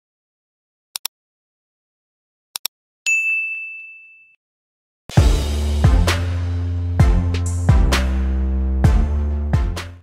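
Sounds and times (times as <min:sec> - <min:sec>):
notification bell ding: 0:03.1 - 0:04.4.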